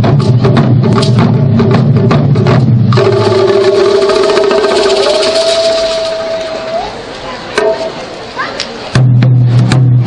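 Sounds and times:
taiko drumming: 0.0s - 6.8s, 8.9s - 10.0s.

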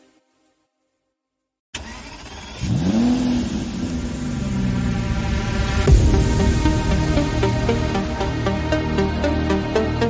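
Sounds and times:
car engine revving: 1.8s - 9.0s.

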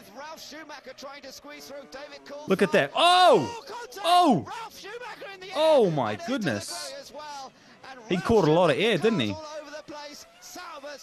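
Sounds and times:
man commentating: 0.0s - 7.0s, 8.0s - 11.0s
racing cars: 0.0s - 11.0s.

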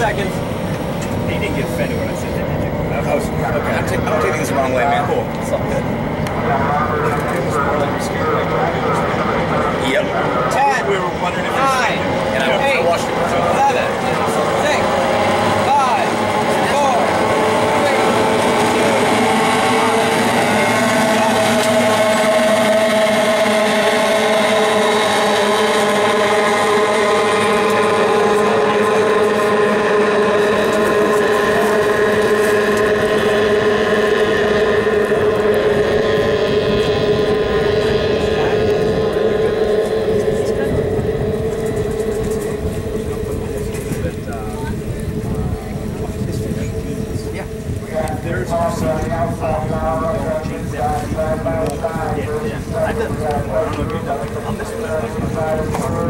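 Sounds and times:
racing boat engines whining: 0.0s - 56.0s.

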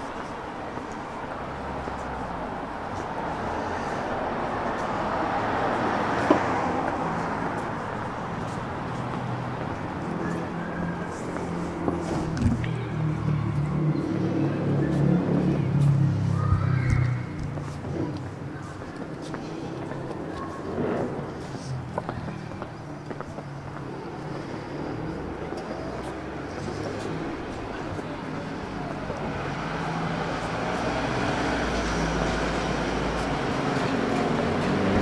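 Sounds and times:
engine rumbling nearby: 0.0s - 35.0s
vehicle passing: 1.4s - 35.0s.

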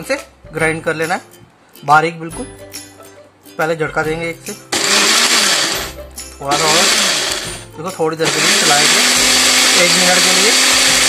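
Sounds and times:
blender grinding: 4.7s - 7.6s, 8.2s - 11.0s.

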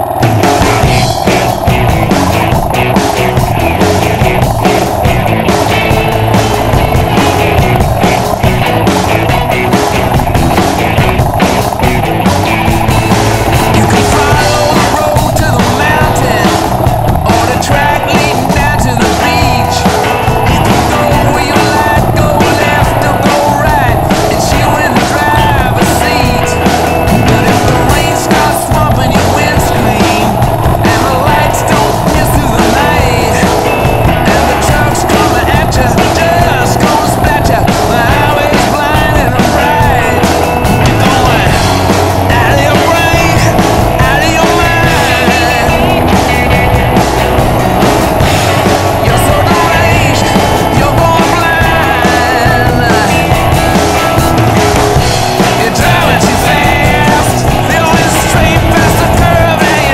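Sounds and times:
motorcycle engine running: 0.0s - 59.9s
wind and road noise: 0.0s - 59.9s.

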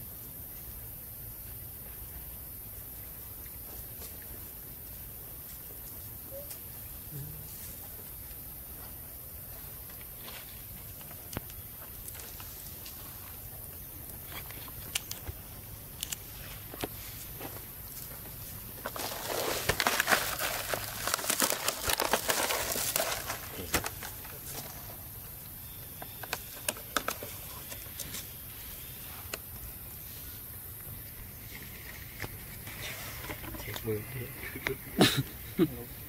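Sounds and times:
dry leaves crackling and rustling: 18.0s - 25.0s.

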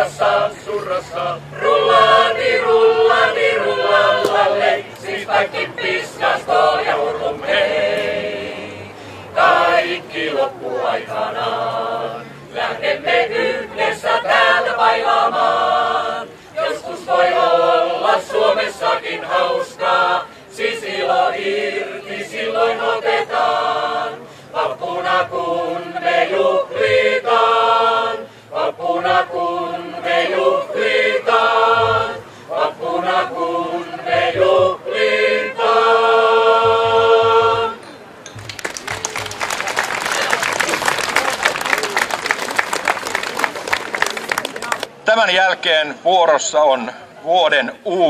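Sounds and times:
mixed choir singing: 0.0s - 38.2s.

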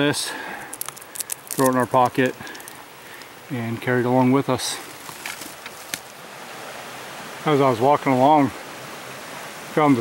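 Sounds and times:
outdoor background hiss: 0.0s - 10.0s
faint rustling: 0.3s - 6.2s.

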